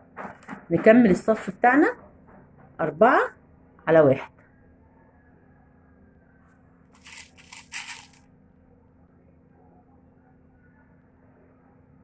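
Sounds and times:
beads rustling and scraping: 7.0s - 8.2s.

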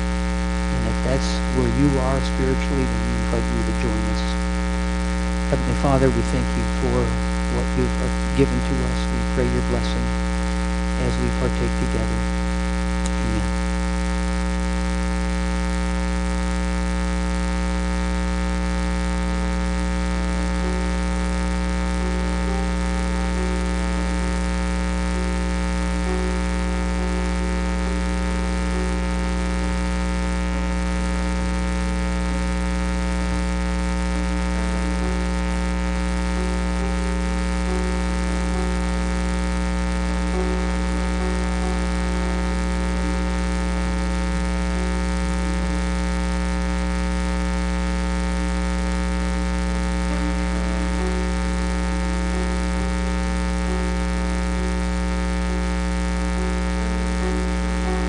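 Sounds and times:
electrical mains hum: 0.0s - 58.0s.

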